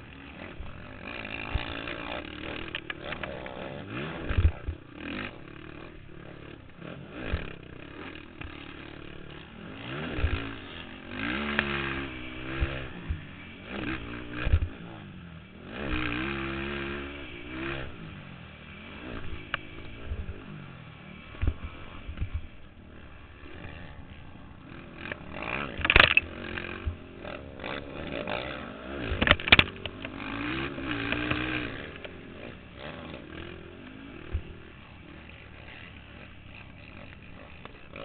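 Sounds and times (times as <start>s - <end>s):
atv engine revving: 0.0s - 38.0s
thumps and rattles on dirt track: 0.0s - 38.0s.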